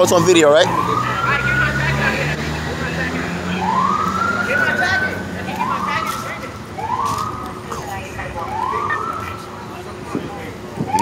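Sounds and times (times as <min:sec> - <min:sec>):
police siren wailing: 0:00.0 - 0:09.8, 0:10.8 - 0:11.0
faint voices: 0:00.0 - 0:11.0.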